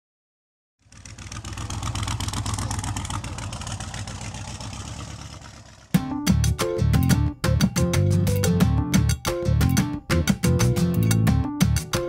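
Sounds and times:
car engine running: 0:00.8 - 0:07.8.

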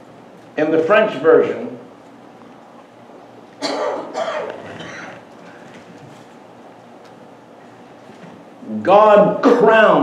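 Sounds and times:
man coughing: 0:03.6 - 0:05.2, 0:09.4 - 0:10.0.

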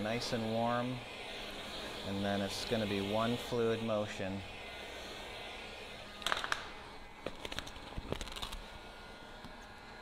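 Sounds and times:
heat gun blowing hiss: 0:00.0 - 0:10.0.

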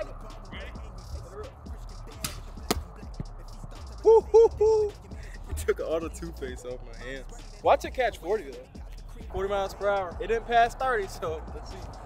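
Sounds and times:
football slapping into gloves: 0:02.2 - 0:02.9.

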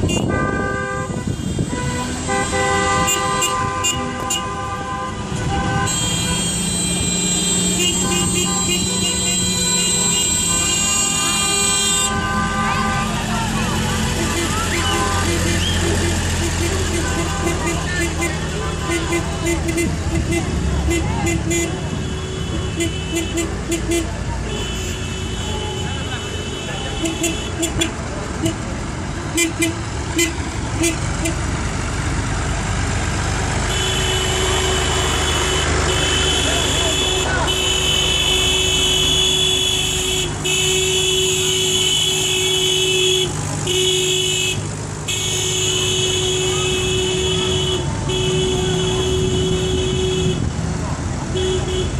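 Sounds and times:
horn toots: 0:00.0 - 0:28.7, 0:29.3 - 0:31.6, 0:33.6 - 0:50.6
tractor engines running: 0:00.0 - 0:51.9.

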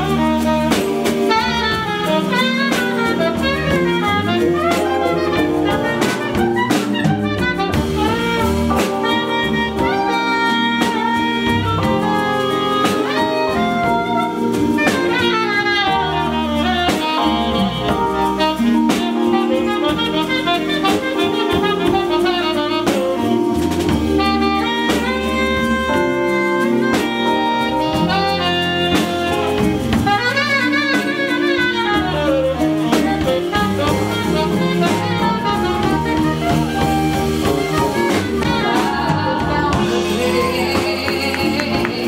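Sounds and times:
jazz band with drums and bass: 0:00.0 - 0:42.0
saxophone solo: 0:00.0 - 0:42.0.

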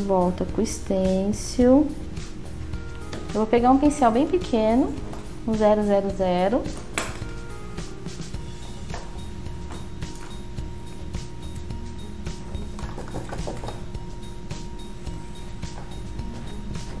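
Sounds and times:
soft background music: 0:00.0 - 0:17.0.

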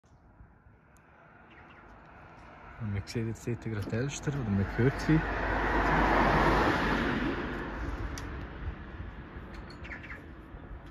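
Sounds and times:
car passing on road: 0:01.0 - 0:09.5.

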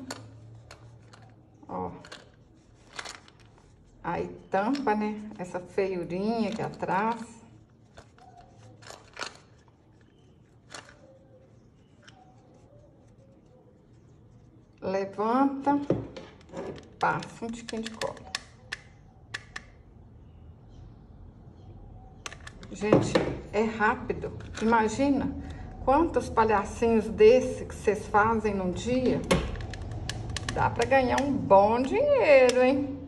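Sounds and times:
faint handling sounds: 0:00.0 - 0:19.8.

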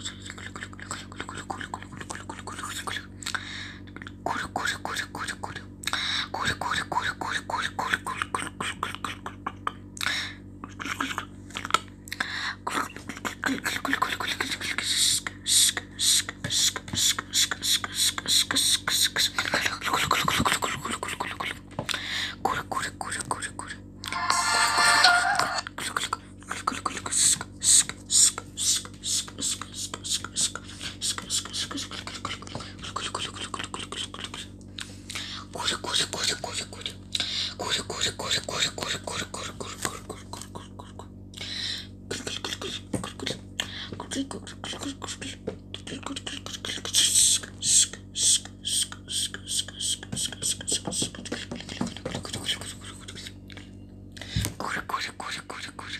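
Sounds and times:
steady low hum: 0:00.0 - 0:55.9
person making hissing mouth sounds: 0:12.2 - 0:21.6, 0:22.9 - 0:50.9
person whispering: 0:12.2 - 0:34.5, 0:35.1 - 0:50.7, 0:54.2 - 0:55.9.

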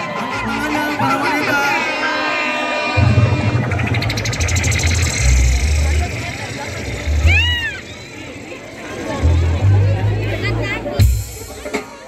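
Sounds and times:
crowd cheering: 0:00.0 - 0:10.0
heavy bass notes: 0:00.0 - 0:12.0
live band playing: 0:00.0 - 0:12.0.

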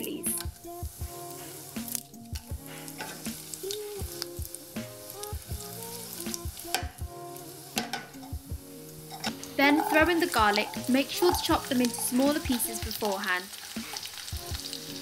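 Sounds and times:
chillies sizzling in hot oil: 0:00.0 - 0:15.0
soft background melody: 0:00.0 - 0:15.0
oil crackling: 0:01.3 - 0:15.0.

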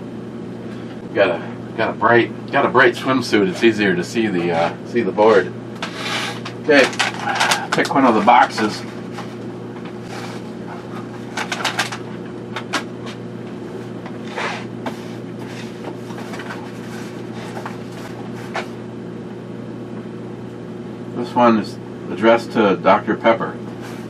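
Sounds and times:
low electrical hum: 0:00.0 - 0:24.0
boxes knocking and rustling: 0:14.4 - 0:18.7.

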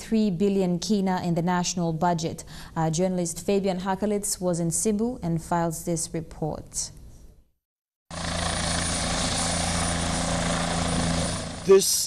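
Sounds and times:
helicopter engine and rotor: 0:08.1 - 0:11.8.

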